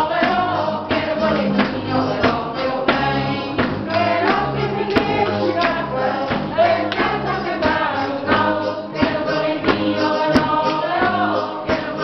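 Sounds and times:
small choir singing: 0.0s - 12.0s
steady beat: 0.0s - 12.0s.

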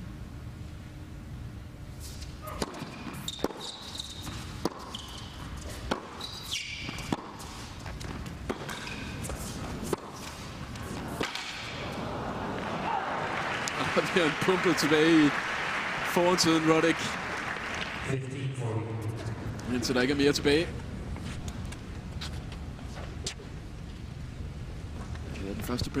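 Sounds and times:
shoes squeaking on court: 2.0s - 11.8s
racket striking tennis ball: 2.1s - 12.8s.

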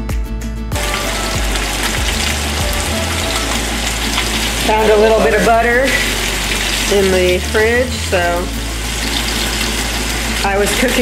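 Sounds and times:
fish sizzling in a pan: 0.8s - 11.0s.

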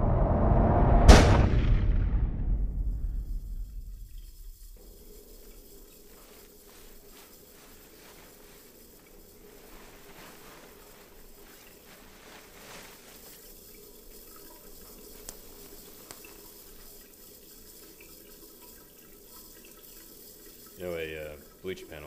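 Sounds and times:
tap water running into washbasin: 3.6s - 22.0s.

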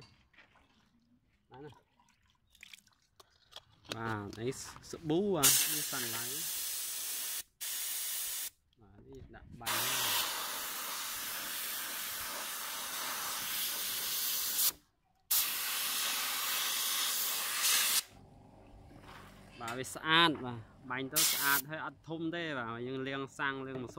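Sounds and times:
air spray gun hissing: 5.4s - 8.5s, 9.7s - 18.1s, 21.2s - 21.6s.

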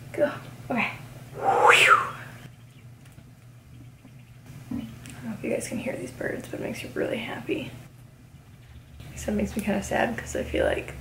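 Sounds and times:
bird call rising and falling: 1.4s - 2.5s.

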